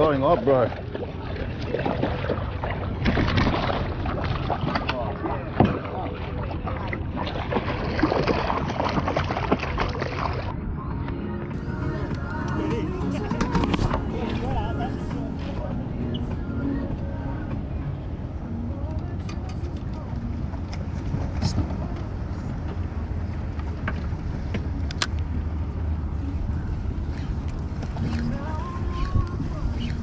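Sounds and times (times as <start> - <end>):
wind and water rumble: 0.0 - 30.0
muffled voices: 10.8 - 22.5.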